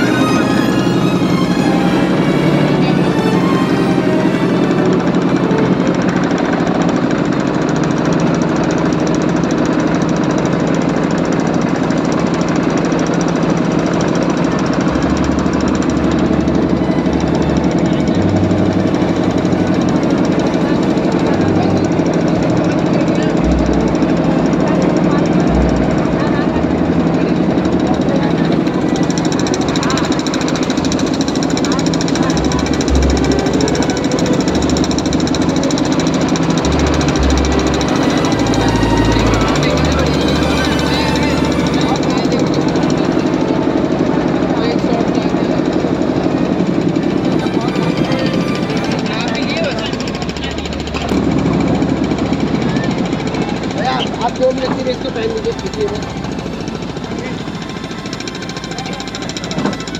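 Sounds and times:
motorboat engine running: 0:00.0 - 0:59.9.

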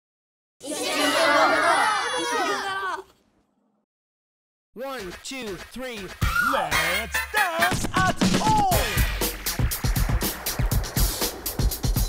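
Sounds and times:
children shouting together: 0:00.6 - 0:03.1.

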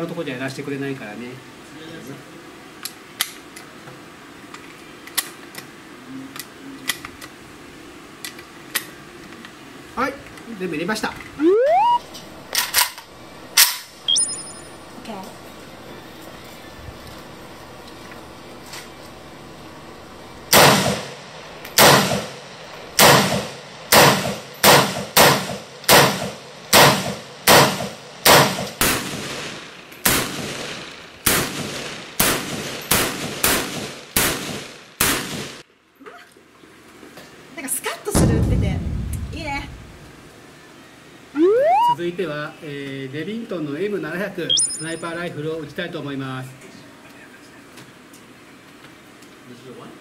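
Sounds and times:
rifle single shots: 0:20.5 - 0:21.2, 0:21.8 - 0:22.4, 0:23.0 - 0:35.6.

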